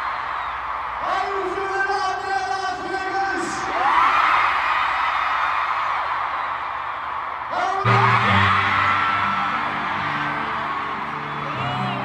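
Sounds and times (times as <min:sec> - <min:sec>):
crowd screaming and cheering: 0:00.0 - 0:12.0.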